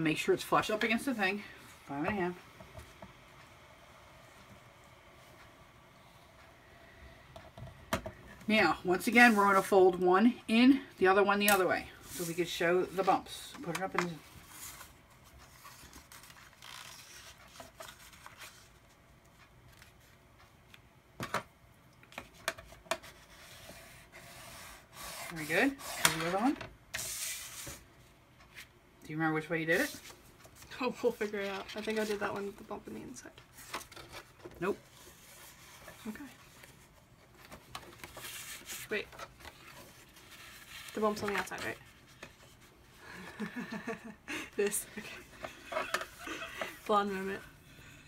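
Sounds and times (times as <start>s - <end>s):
paper rustling: 29.7s - 32.7s, 33.5s - 42.7s
cardstock rustling and sliding: 37.4s - 42.7s.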